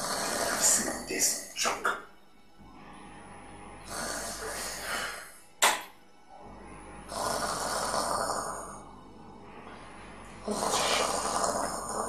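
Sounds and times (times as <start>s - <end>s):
sharp percussive hit: 5.6s - 6.0s.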